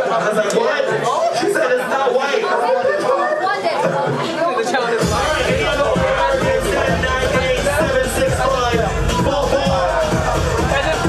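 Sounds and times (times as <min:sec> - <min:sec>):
crowd chatter in a hall: 0:00.0 - 0:11.0.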